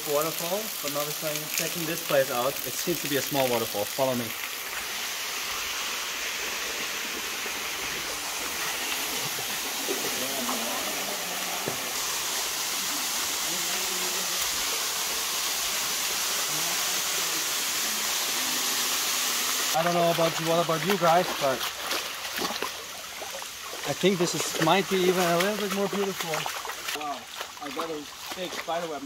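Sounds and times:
waterfall pouring into pool: 0.0s - 29.0s.

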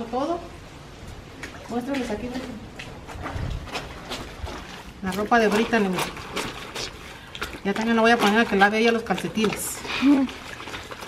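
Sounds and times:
clothes scrubbed by hand: 1.8s - 11.0s.

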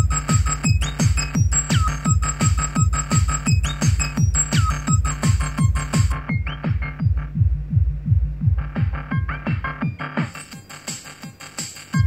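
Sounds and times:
synth: 0.0s - 12.0s
techno kick drum: 0.0s - 12.0s.

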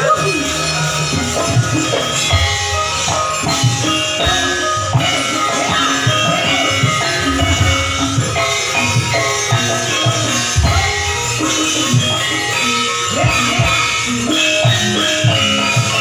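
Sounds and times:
metallophone melody: 0.0s - 16.0s
hand drum strokes: 0.9s - 16.0s.

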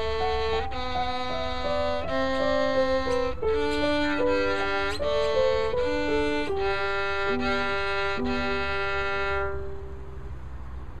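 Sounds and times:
violin bowed note: 0.0s - 10.1s.

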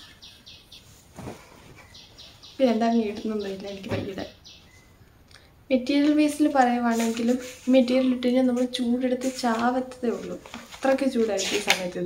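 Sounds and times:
high chirping: 0.0s - 1.0s, 1.8s - 5.2s
cloth rustling: 0.8s - 2.2s, 6.7s - 12.0s.

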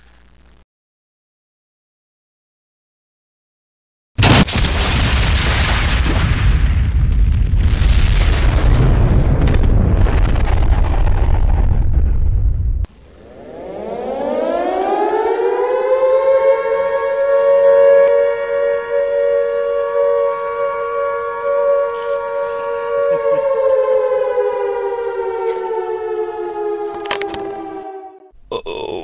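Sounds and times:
loud explosion rumble: 4.2s - 12.9s
civil defense siren wailing: 12.9s - 28.4s.

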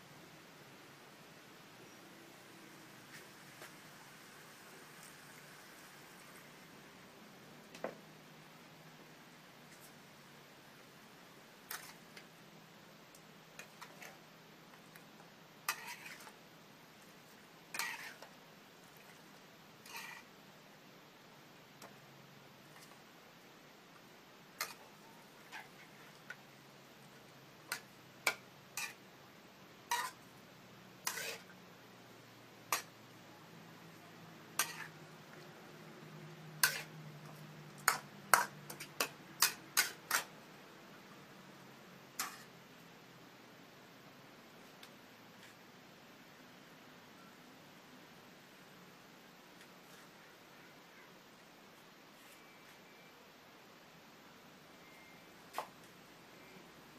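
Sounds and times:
faint steady hum: 0.0s - 56.9s
spatula clacking on wok: 27.7s - 29.0s, 34.6s - 34.9s, 36.6s - 36.9s, 37.8s - 40.3s.

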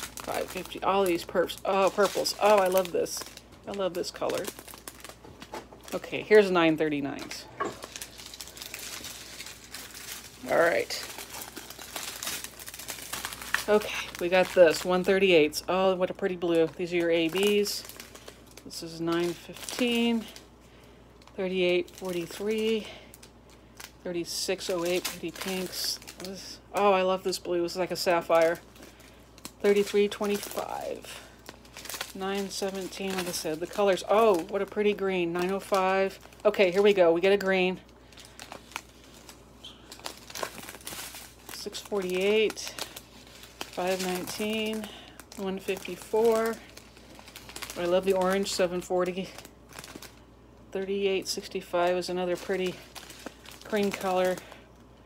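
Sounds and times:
plastic bags crinkling: 0.0s - 55.0s.

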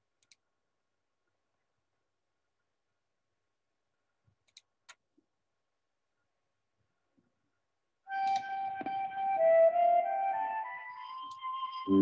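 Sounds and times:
click: 0.2s - 0.4s, 4.3s - 5.0s, 8.2s - 9.0s
soft flute-like hymn melody: 8.1s - 12.0s.

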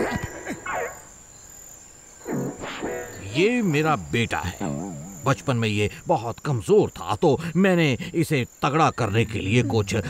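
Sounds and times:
crickets chirping: 0.0s - 10.0s.

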